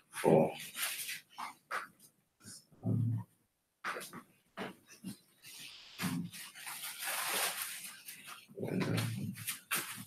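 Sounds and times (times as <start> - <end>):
person saying um: 8.6 - 9.4.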